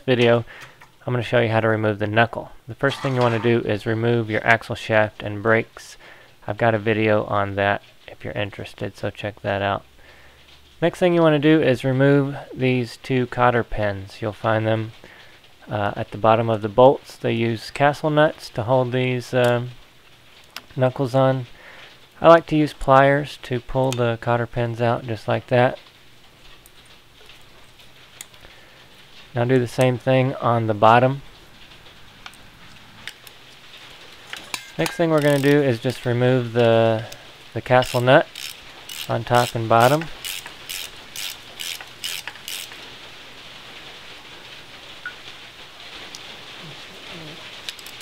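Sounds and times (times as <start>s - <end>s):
faint steady hiss: 0.0s - 48.0s
ratchet wrench clicking: 35.2s - 36.0s, 37.8s - 42.8s, 47.7s - 48.0s.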